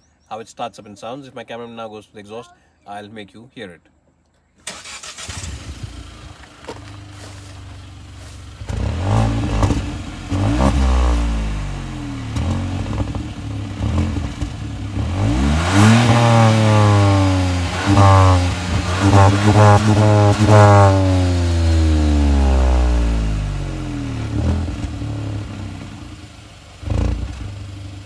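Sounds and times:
car engine idling and revving: 4.7s - 28.0s.

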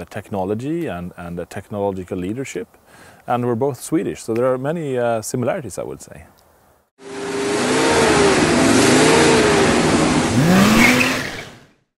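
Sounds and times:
car engine revving: 7.0s - 11.8s.

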